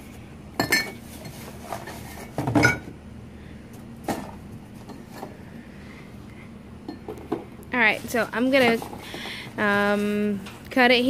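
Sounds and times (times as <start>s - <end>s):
junk clattering in a dumpster: 8.1s - 10.0s.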